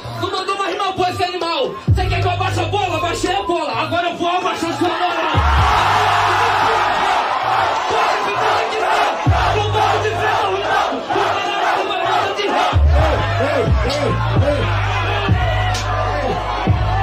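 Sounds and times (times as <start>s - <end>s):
hip-hop beat with deep bass: 0.0s - 7.3s, 8.2s - 17.0s
crowd yelling and cheering: 0.0s - 17.0s.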